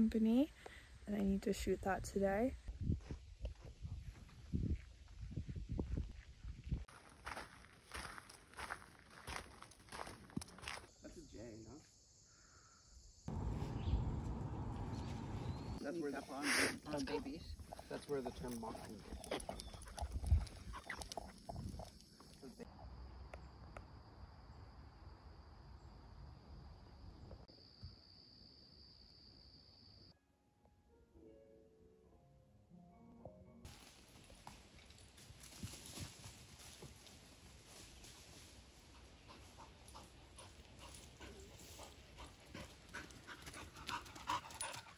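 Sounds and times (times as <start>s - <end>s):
dog steps on dirt path: 6.9s - 10.9s, 17.0s - 22.3s
dog panting: 16.5s - 21.9s, 38.9s - 44.9s
dog breathing hard: 39.2s - 44.9s.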